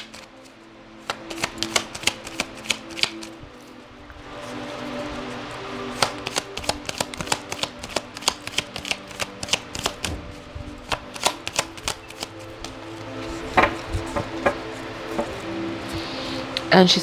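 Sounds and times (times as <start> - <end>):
cards being shuffled: 0.0 - 16.0
faint background music: 0.0 - 17.0.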